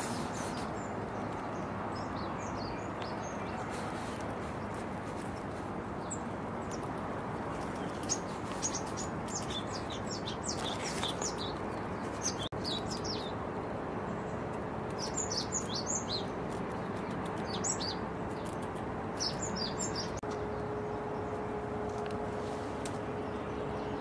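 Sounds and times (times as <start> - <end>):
faint steady hum: 0.0 - 24.0
small birds chirping: 0.0 - 24.0.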